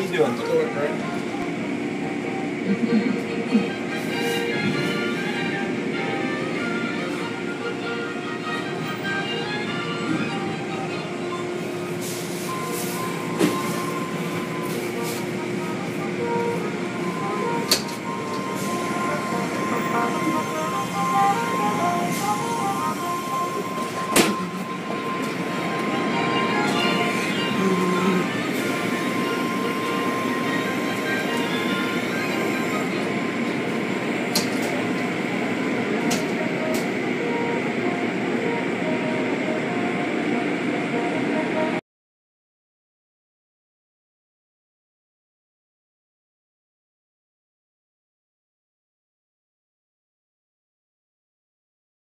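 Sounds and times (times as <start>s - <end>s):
machinery hum: 0.0s - 41.8s.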